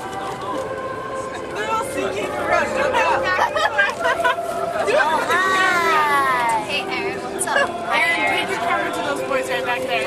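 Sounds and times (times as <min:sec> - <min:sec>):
people chatting: 0:00.0 - 0:10.0.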